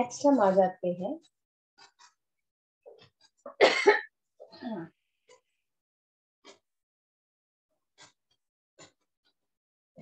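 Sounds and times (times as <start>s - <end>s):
woman coughing: 3.5s - 4.1s.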